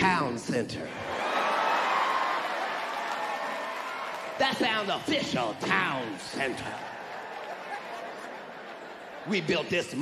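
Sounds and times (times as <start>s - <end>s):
people clapping: 1.1s - 9.6s
audience laughing: 7.2s - 10.0s.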